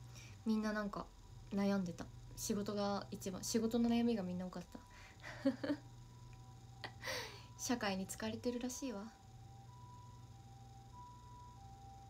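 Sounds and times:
faint steady hum: 0.0s - 12.0s
woman laughing: 5.2s - 5.8s.

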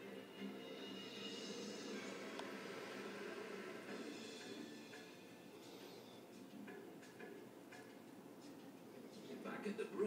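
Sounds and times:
faint television music: 0.0s - 10.0s.

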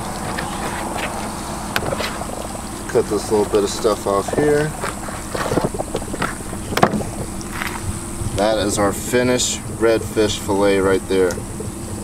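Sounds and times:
wind on microphone: 4.1s - 12.0s.

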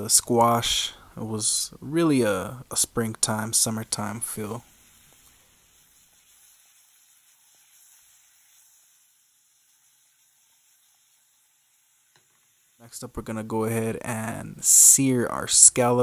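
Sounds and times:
vegetables sizzling in oil: 2.8s - 14.0s.

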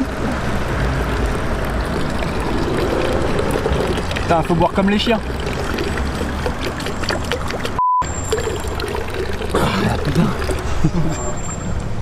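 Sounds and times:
water running from fountain spout: 0.0s - 11.6s.

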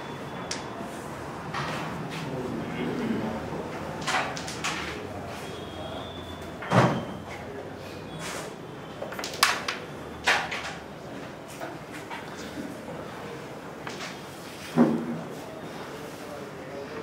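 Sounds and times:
wooden carrom pieces clicking: 4.0s - 4.9s, 9.1s - 10.8s.

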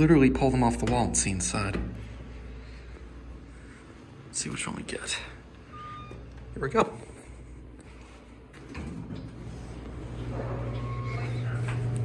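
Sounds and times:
elevator hum: 0.0s - 12.0s.

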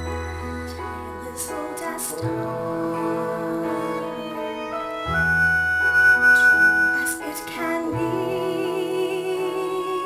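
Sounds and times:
orchestra playing: 2.4s - 8.9s.

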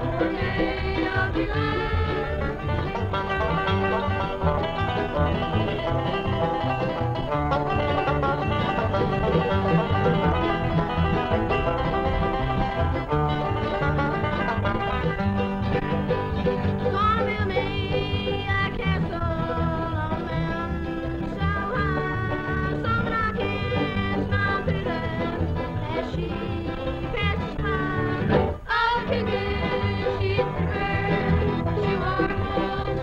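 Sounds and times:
banjo picked notes: 0.0s - 33.0s
bluegrass band playing: 0.0s - 33.0s.

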